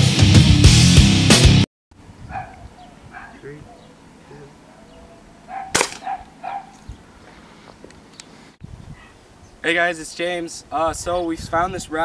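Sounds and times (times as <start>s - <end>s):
air rifle shot crack: 5.7s - 6.2s.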